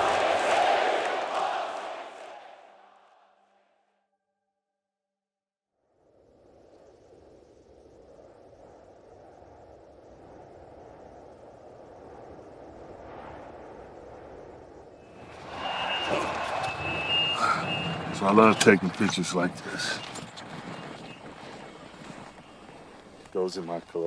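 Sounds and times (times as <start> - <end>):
low rushing noise: 5.9 - 23.7
reverse warning beeper: 15.0 - 23.0
golf cart moving: 15.2 - 24.0.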